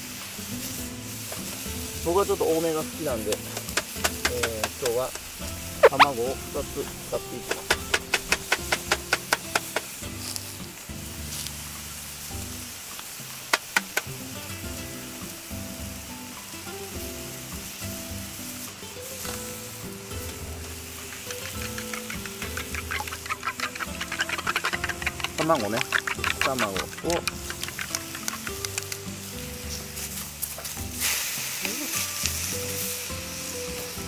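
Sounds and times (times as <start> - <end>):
background music: 0.0 - 34.0
cabbage sizzling in butter: 0.0 - 34.0
rapid clicking: 7.4 - 9.9, 21.0 - 29.0
sharp knocks: 7.5 - 9.9
chopsticks rattling against metal cup: 20.9 - 29.2.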